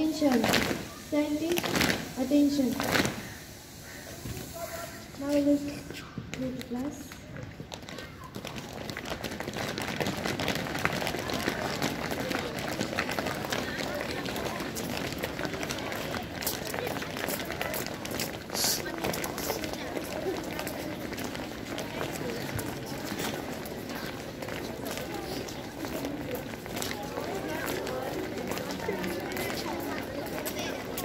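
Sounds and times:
children chattering: 0.0s - 31.0s
footsteps on pavement: 5.1s - 31.0s.

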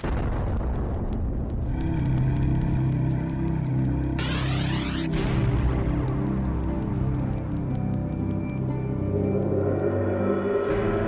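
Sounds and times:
faint high ticking: 1.5s - 9.9s.

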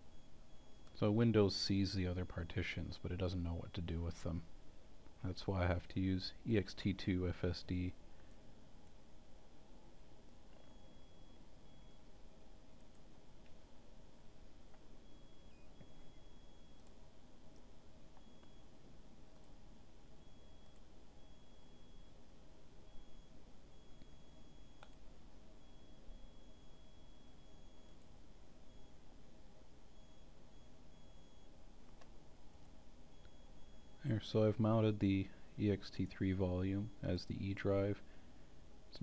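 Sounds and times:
mouse clicks: 24.8s - 25.0s, 31.8s - 33.4s.

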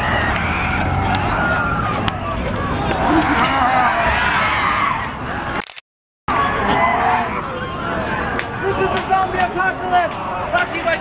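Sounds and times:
crowd talking and calling out: 0.0s - 5.6s, 6.3s - 11.0s.

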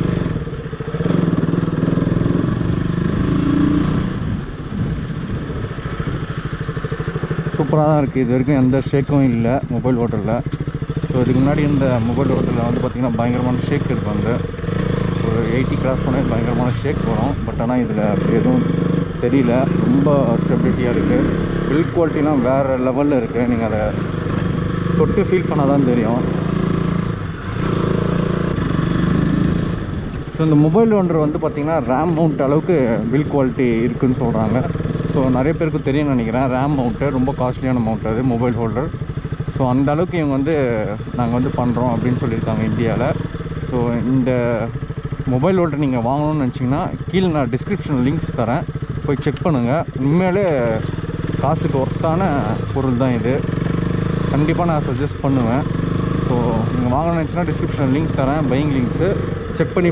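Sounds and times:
motorcycle engine running: 0.0s - 59.9s
rider talking: 7.2s - 26.6s, 30.2s - 59.9s.

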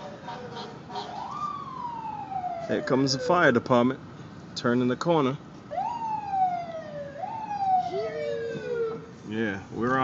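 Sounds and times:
fire engine siren wailing: 0.0s - 3.9s, 5.7s - 9.3s.

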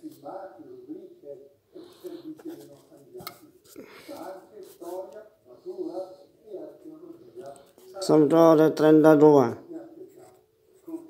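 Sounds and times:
man speaking quietly: 0.0s - 11.0s.

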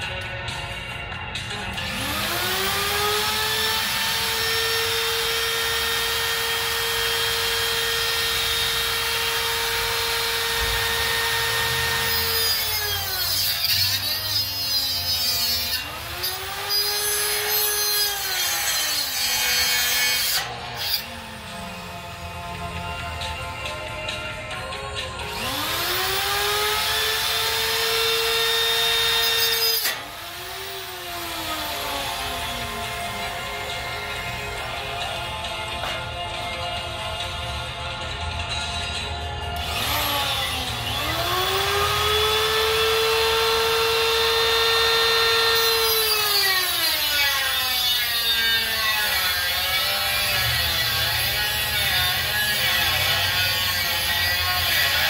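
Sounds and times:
angle grinder whining: 1.4s - 37.1s, 39.4s - 55.0s
grinding steel bar: 1.8s - 21.8s.

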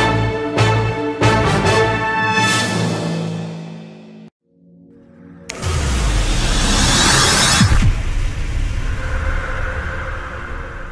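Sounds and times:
low rumbling drone: 5.4s - 10.9s.

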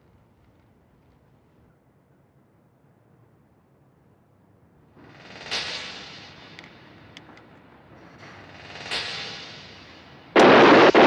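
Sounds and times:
rifle fire burst: 10.4s - 11.0s.

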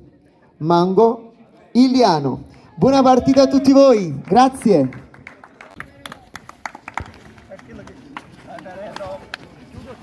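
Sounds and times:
people clapping: 3.2s - 10.0s.

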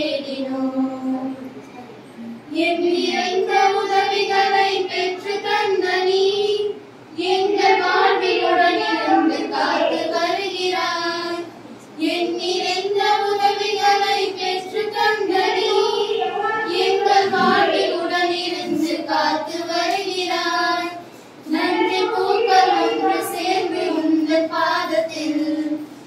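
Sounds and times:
women singing in unison: 2.5s - 26.0s.

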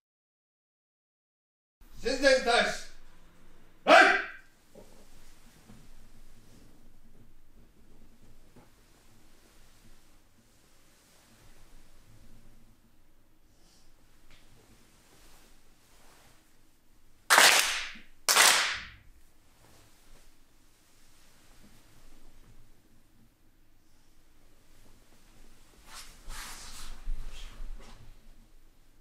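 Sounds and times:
person shouting command: 2.0s - 2.9s, 3.9s - 4.4s
group clapping in unison: 17.3s - 19.0s.

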